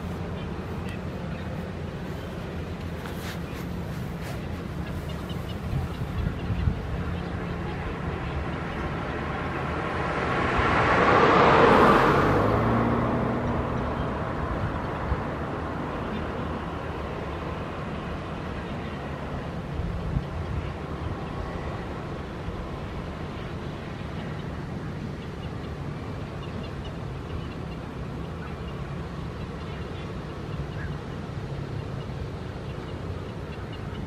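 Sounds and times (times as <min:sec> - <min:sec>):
road vehicle passing: 0:00.0 - 0:34.0.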